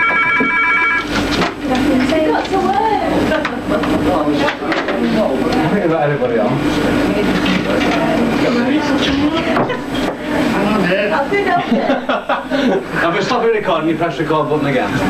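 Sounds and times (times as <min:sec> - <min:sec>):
people talking at once: 0:01.5 - 0:15.0.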